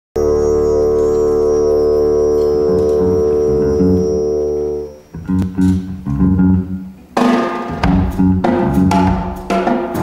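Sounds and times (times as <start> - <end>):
live band music: 0.2 - 10.0.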